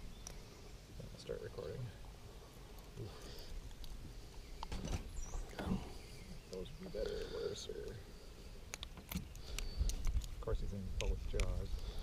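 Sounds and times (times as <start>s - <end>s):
light clicks and taps: 11.0s - 11.6s.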